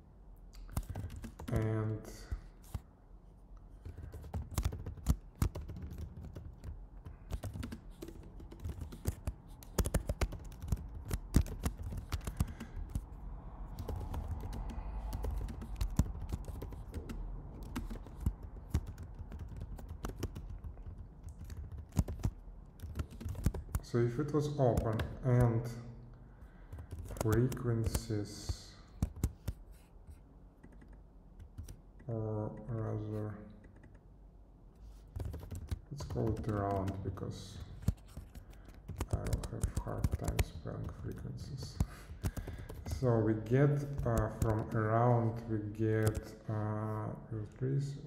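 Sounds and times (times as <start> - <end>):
computer keyboard typing: 0.6 - 2.8, 3.8 - 25.7, 26.6 - 29.6, 30.6 - 32.0, 33.6 - 34.0, 35.1 - 46.4.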